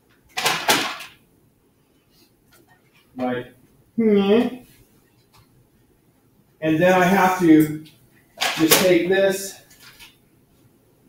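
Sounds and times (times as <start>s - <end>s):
handling noise: 7.4s - 10.2s.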